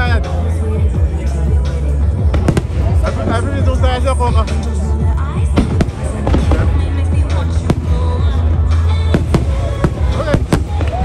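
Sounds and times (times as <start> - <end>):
fireworks bangs: 2.2 - 4.6, 5.4 - 11.0.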